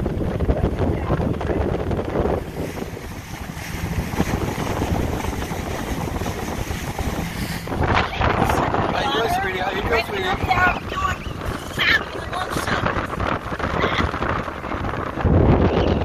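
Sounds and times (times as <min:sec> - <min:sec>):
boat engine: 0:00.0 - 0:16.0
water rushing past hull: 0:00.0 - 0:16.0
wind buffeting microphone: 0:00.0 - 0:16.0.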